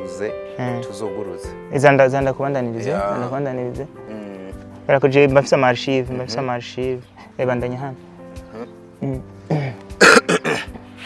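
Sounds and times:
soft background music: 0.0s - 11.0s
man coughing: 9.5s - 10.8s.

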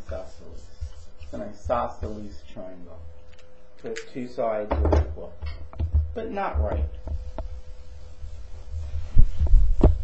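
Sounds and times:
dull thumps: 4.7s - 7.6s.

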